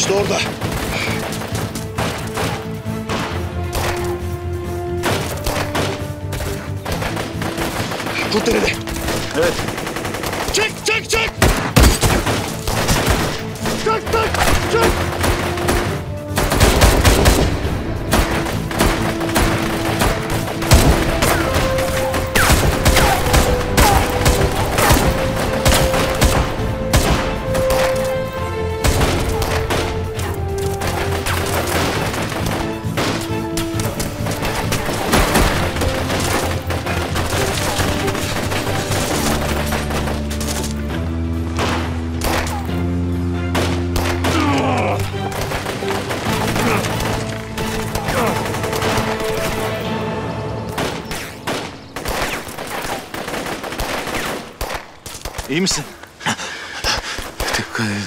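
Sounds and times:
dramatic film score: 0.0 - 58.0
automatic rifle fire: 6.8 - 10.7, 50.8 - 55.5.

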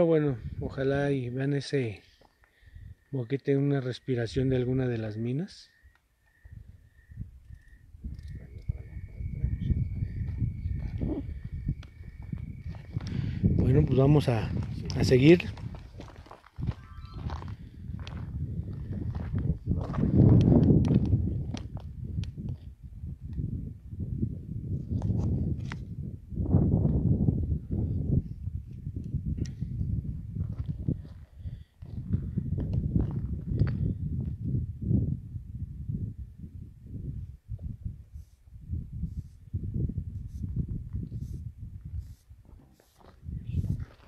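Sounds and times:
low rumble on microphone: 6.5 - 44.0
footsteps on gravel: 14.3 - 21.8, 42.8 - 44.0.

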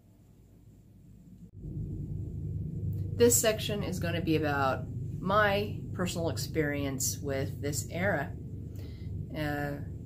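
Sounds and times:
steady low rumble: 0.2 - 10.0.

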